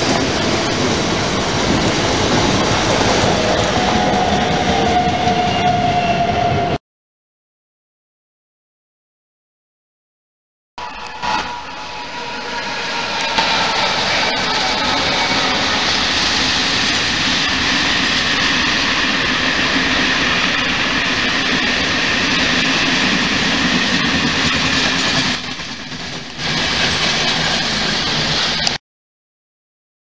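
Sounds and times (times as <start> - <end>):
freight train rolling past: 0.0 - 6.8, 10.8 - 28.8.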